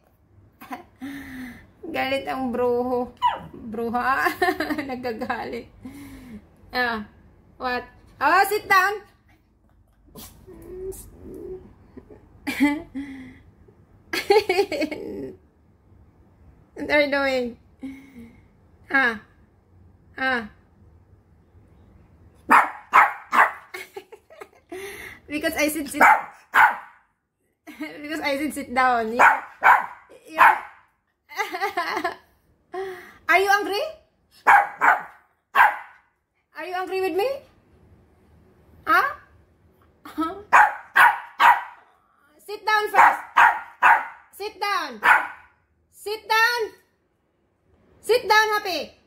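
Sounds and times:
small dog barking: 3.2s - 3.6s, 22.5s - 23.7s, 26.0s - 27.0s, 29.2s - 30.8s, 34.4s - 36.0s, 40.5s - 41.9s, 42.9s - 44.2s, 45.0s - 45.5s.

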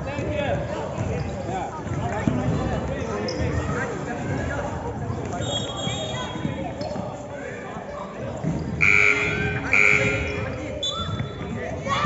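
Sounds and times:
voices of players and spectators: 0.0s - 12.0s.

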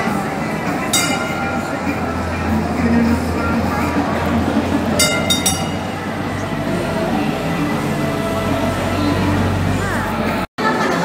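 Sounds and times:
tram rumbling: 0.0s - 11.0s
high metallic ringing: 0.9s - 3.9s, 5.0s - 7.2s.

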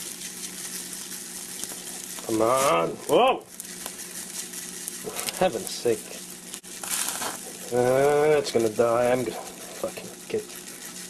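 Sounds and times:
steak sizzling: 0.0s - 11.0s.

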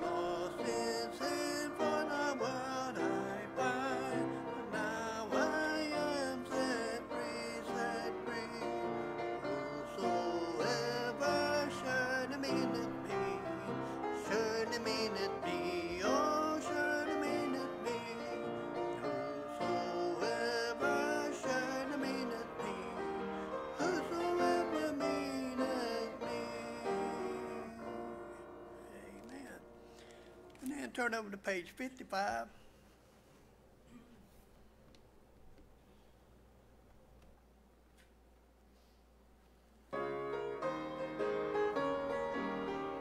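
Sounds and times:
piano accompaniment: 0.0s - 30.0s, 39.9s - 43.0s
hymn singing: 0.0s - 32.5s.

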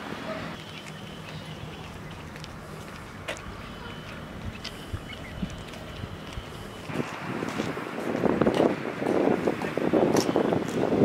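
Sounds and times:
low outdoor rumble: 0.0s - 11.0s
footsteps on pavement: 0.5s - 11.0s.

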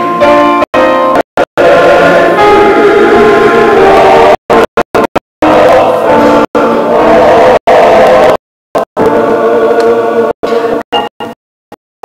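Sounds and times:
men's choir singing: 1.4s - 10.8s.

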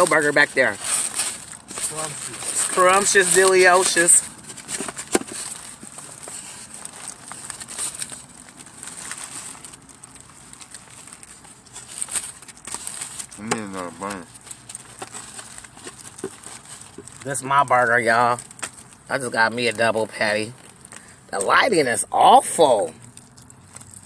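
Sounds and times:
paper wrapper crinkling: 0.0s - 24.0s
person chewing food: 4.3s - 17.2s, 20.5s - 21.3s, 23.0s - 24.0s.

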